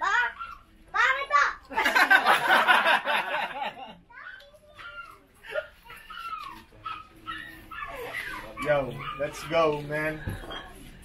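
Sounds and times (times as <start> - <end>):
dog whimpering: 6.1 - 9.8.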